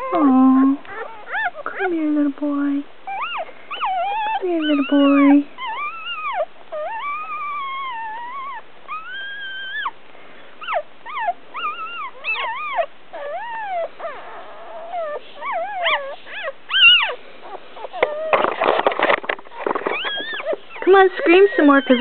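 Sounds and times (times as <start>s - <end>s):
puppy whining and squealing: 0.0s - 1.9s, 3.0s - 10.0s, 10.6s - 22.0s.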